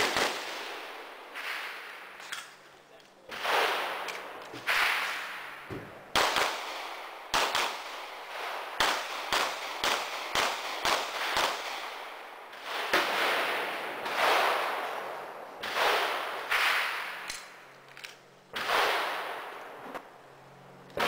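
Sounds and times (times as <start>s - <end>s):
gunshots: 0.0s - 2.5s, 3.2s - 17.6s, 18.5s - 20.0s.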